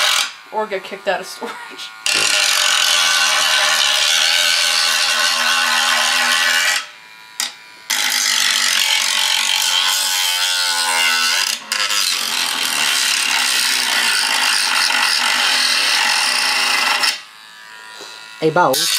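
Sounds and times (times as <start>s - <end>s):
rotary tool grinding: 0.0s - 18.9s.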